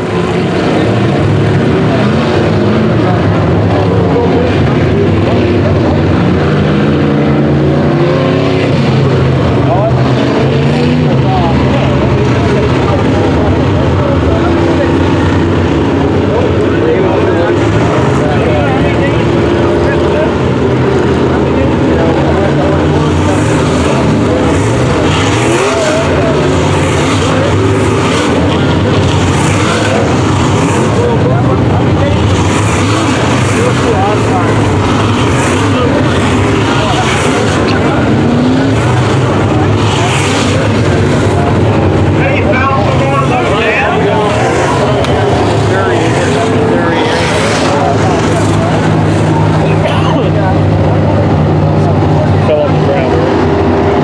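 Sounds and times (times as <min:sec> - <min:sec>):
race car engines: 0:00.0 - 0:54.0.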